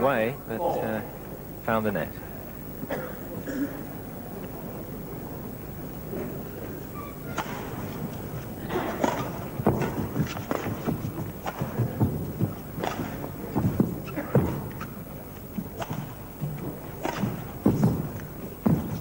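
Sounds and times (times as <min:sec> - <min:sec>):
feet pounding and sliding on court: 0:04.4 - 0:19.0
rackets striking shuttlecock: 0:07.2 - 0:17.9.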